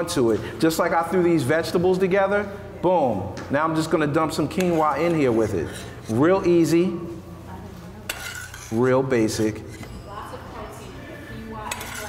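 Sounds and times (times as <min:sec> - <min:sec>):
metal spoon scraping saucepan: 0:04.4 - 0:06.8, 0:08.0 - 0:10.1, 0:11.6 - 0:12.0.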